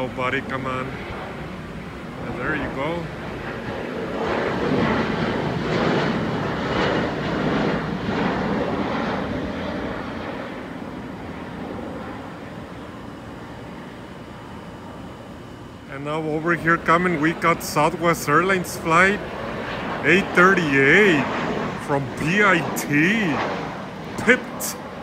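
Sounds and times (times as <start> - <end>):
jet passing overhead: 0.0 - 25.0.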